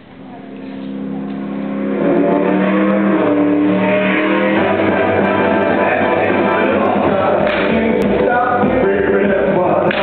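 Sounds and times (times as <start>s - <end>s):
sustained synth chords: 0.0s - 10.0s.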